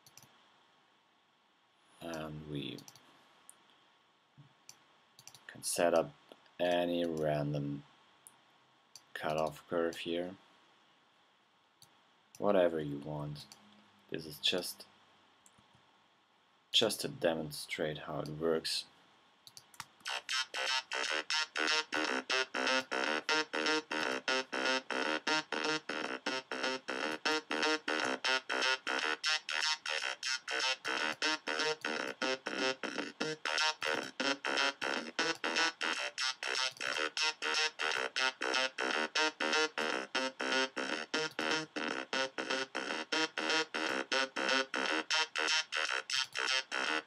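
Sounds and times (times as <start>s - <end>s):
synthesizer repeating short notes: 20.1s - 47.0s.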